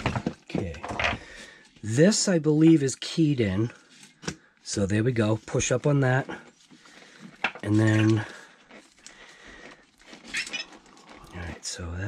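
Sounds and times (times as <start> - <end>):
plastic parts handling noise: 0.0 - 1.8, 6.0 - 11.9.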